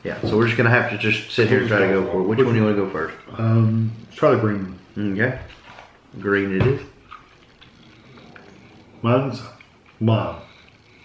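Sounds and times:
person chewing: 7.0 - 11.0.

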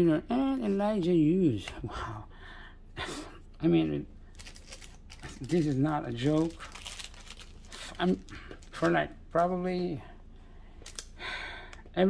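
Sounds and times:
man breathing: 1.9 - 3.5, 10.0 - 11.9.

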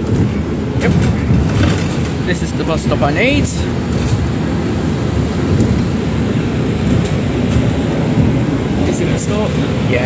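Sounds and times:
bus engine and road rumble: 0.0 - 10.0.

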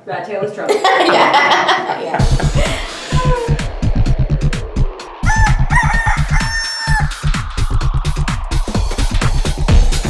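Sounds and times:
electronic dance music: 2.2 - 10.0
rooster crowing: 5.2 - 7.4.

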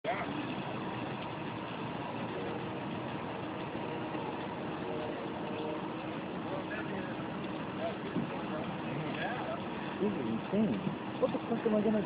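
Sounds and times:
steady outdoor din: 0.0 - 12.0
faint distant voices: 3.8 - 12.0.

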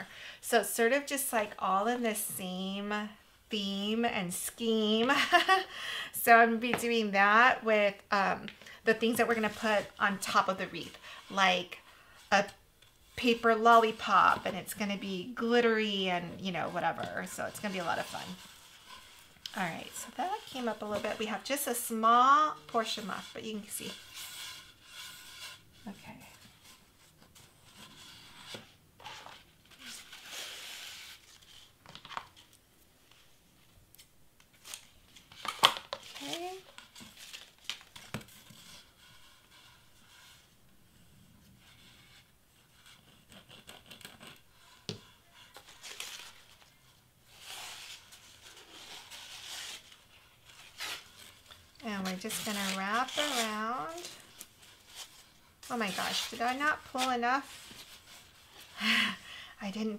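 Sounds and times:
paper streamer rustling and crinkling: 34.5 - 40.4, 45.4 - 59.1.

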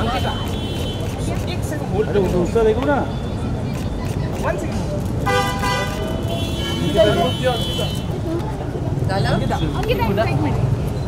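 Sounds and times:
vehicle horn honking: 5.2 - 8.1.

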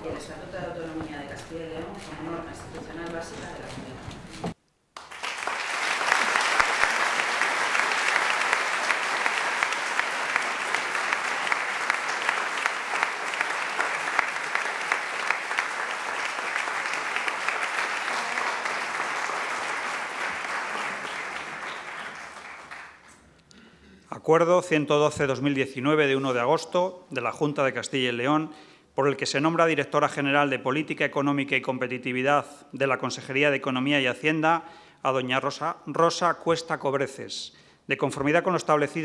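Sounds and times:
audience applauding: 5.0 - 23.3.

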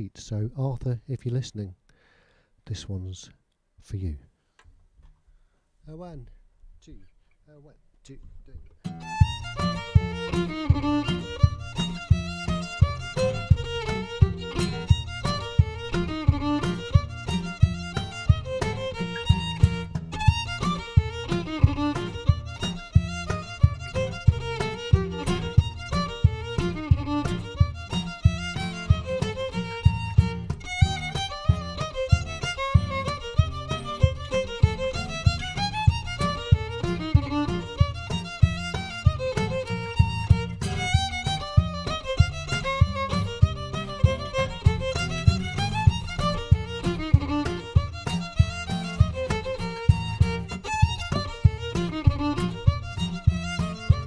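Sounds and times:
cajon beat: 8.6 - 54.0
fiddle melody: 8.8 - 54.0
strummed acoustic guitar: 8.8 - 54.0.

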